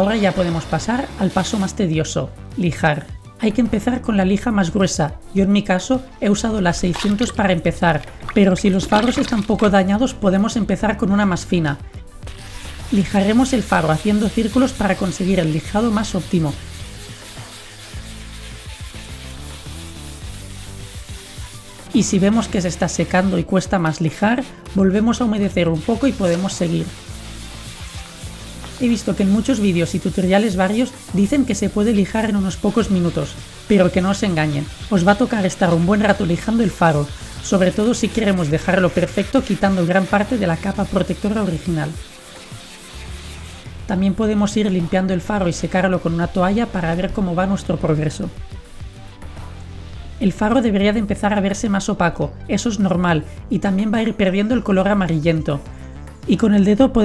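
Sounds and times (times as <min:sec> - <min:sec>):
wet sandpaper rubbing plastic: 0:00.0 - 0:01.7, 0:06.8 - 0:09.9, 0:12.2 - 0:50.8
background music: 0:00.0 - 0:57.0.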